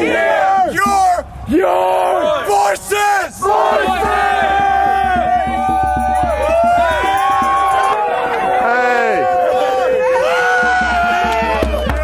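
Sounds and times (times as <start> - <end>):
crowd shouting together: 0.0 - 12.0.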